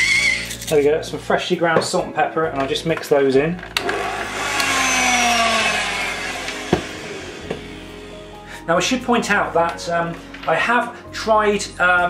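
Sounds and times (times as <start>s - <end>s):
electric hand mixer whirring: 0.0s - 0.4s, 3.8s - 8.5s
sharp knocks: 6.7s - 7.7s.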